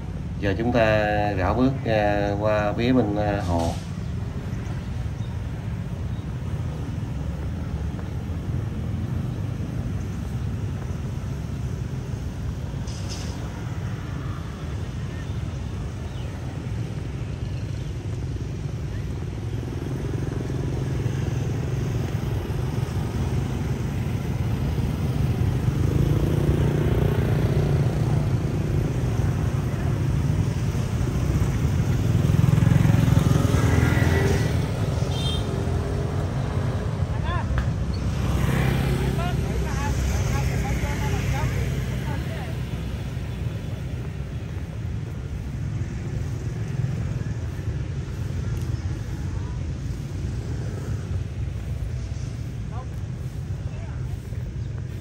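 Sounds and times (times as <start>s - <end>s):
low rumble of traffic: 0.0s - 55.0s
motorbikes riding past: 0.0s - 55.0s.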